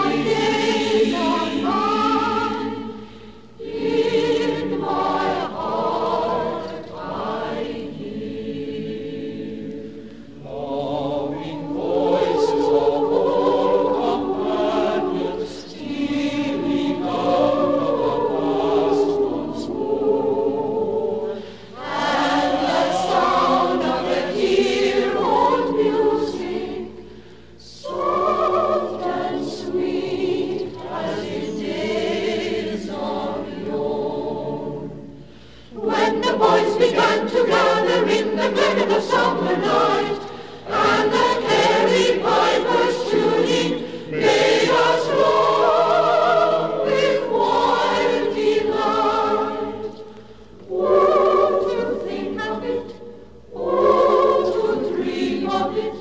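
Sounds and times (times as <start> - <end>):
choir singing: 0.0 - 56.0.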